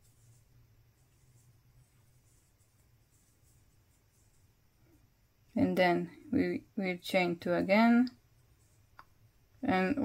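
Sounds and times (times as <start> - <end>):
crochet hook rustling yarn: 0.0 - 10.0
low steady hum: 0.0 - 10.0.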